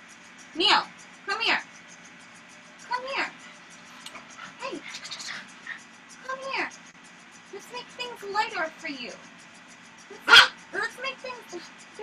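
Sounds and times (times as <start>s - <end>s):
dog barking: 10.2s - 10.6s.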